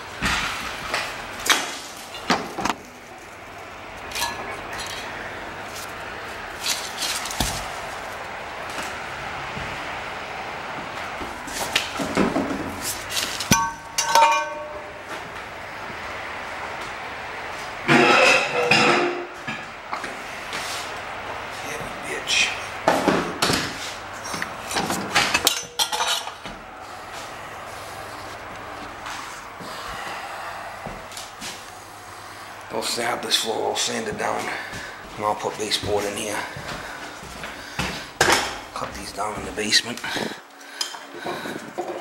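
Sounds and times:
steady background hiss: 0:00.0 - 0:42.0
metal knocking against metal: 0:13.5 - 0:15.0
ringing metal clanks: 0:13.5 - 0:15.0, 0:25.3 - 0:26.4.

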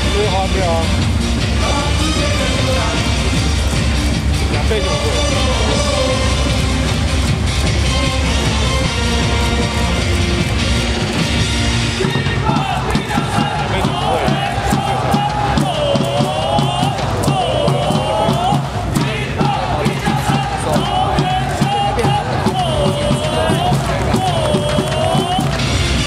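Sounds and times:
cheer song over stadium speakers: 0:00.0 - 0:26.0
steady drum beat: 0:00.0 - 0:26.0
crowd chanting: 0:01.5 - 0:26.0.

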